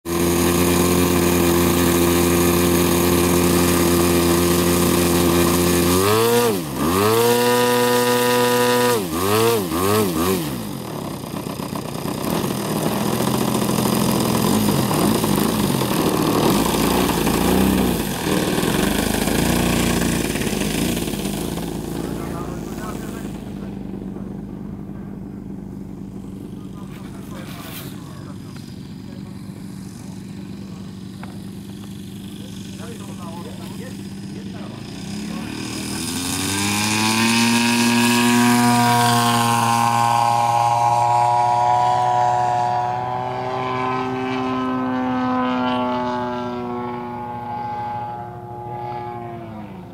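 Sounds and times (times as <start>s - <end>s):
model airplane engine: 0.0s - 49.9s.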